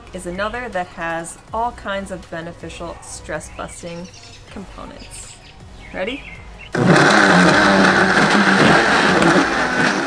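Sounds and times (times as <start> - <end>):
blender motor whining: 6.8 - 10.0.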